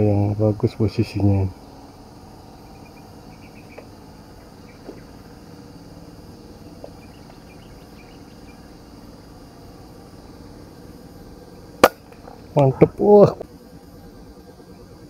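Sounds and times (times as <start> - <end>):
insects buzzing: 0.0 - 15.0
faint bird chirps: 1.4 - 5.8, 6.4 - 9.8.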